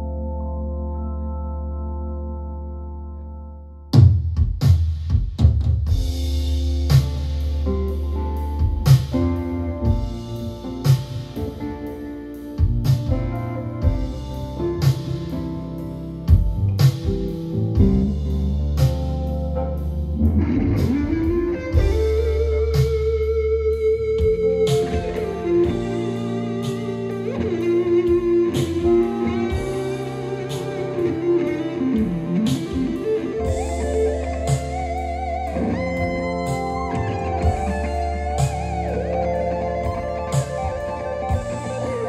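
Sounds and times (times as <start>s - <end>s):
held keyboard chord: 0.0s - 4.0s, 6.0s - 42.0s
drum and cymbal hit: 4.0s - 7.7s
rock band playing: 5.9s - 42.0s
drum hits: 16.3s - 18.1s, 32.0s - 39.0s
electric guitar note bend: 19.6s - 42.0s.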